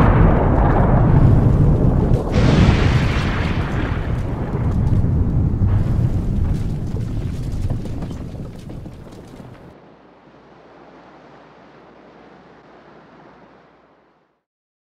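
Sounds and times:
scattered crackles: 0.0 - 9.8
explosion rumble: 0.0 - 13.3
sea waves: 2.3 - 14.4.

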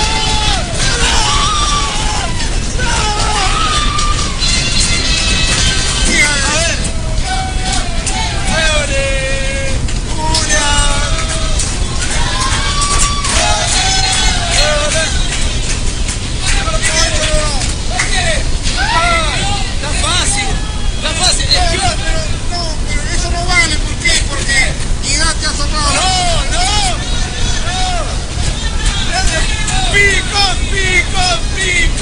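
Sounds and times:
steady low hum: 0.0 - 32.0
voices talking over one another: 0.0 - 32.0.

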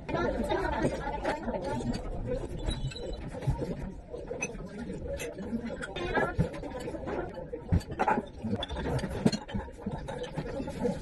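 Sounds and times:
background chatter of people talking: 0.0 - 11.0.

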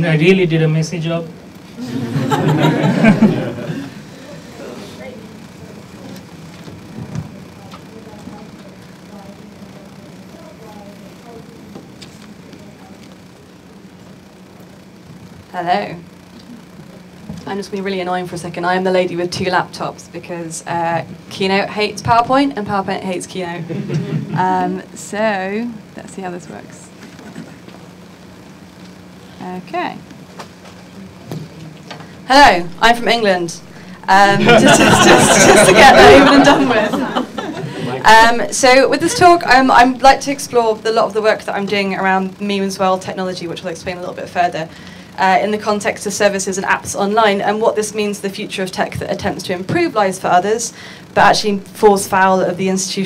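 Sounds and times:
steady low hum: 0.0 - 53.0.

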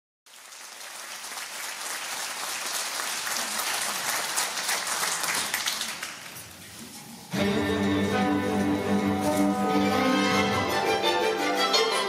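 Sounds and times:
audience applauding: 0.3 - 6.5.

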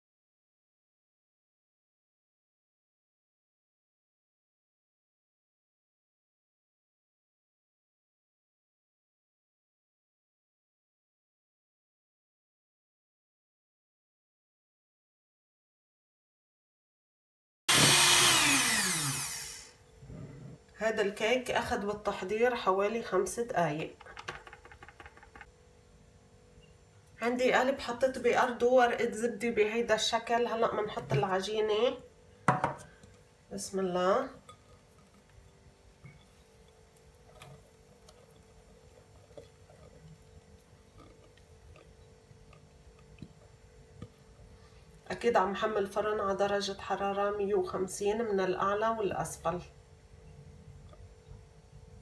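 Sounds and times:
electric hand mixer beating batter: 17.7 - 19.7
faint room hum: 17.7 - 52.0.

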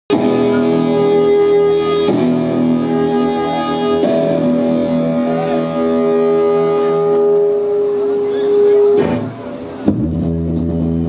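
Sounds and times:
electric guitars ringing: 0.1 - 11.0
low drone: 0.2 - 11.0.

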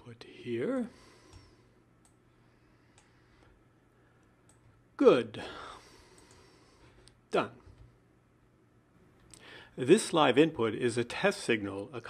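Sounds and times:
faint computer mouse clicks: 4.2 - 4.7, 6.2 - 6.4.

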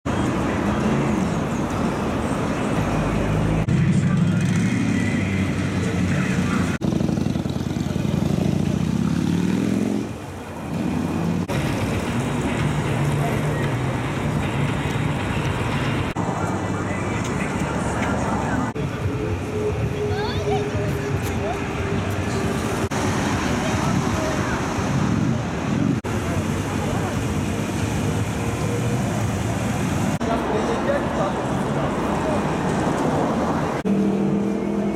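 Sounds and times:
motorcycle engine revving: 3.7 - 11.5
crowd voices: 11.5 - 34.9.

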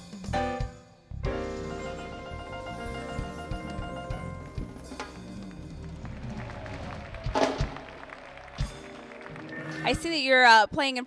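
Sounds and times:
jazz band playing: 0.3 - 10.4.

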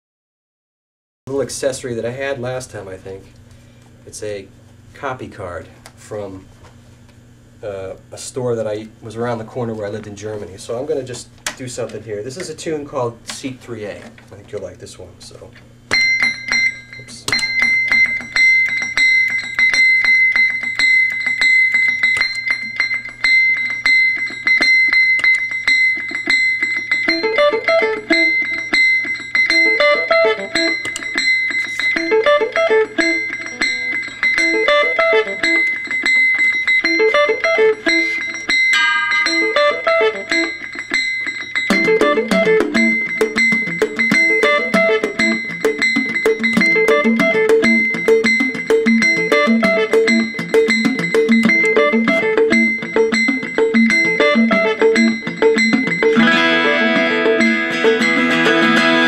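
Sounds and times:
steady high ringing tone: 15.9 - 59.0
electric guitar playing jazz: 25.2 - 59.0.

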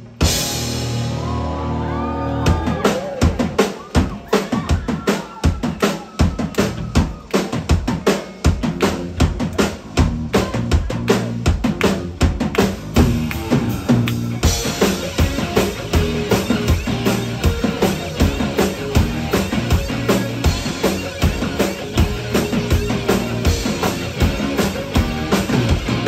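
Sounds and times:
drum kit fast rhythm: 0.0 - 1.4, 2.4 - 26.0
rock band playing loud: 0.0 - 26.0
sustained electric guitars: 6.5 - 26.0.

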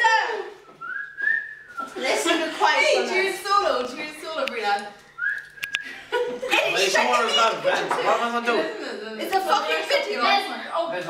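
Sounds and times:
person whistling a note: 0.6 - 1.9, 5.2 - 5.8.

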